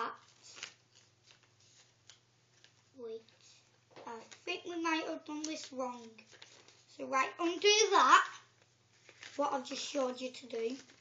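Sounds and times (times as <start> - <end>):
paper rustling and crinkling: 0.0 - 7.0, 8.5 - 11.0.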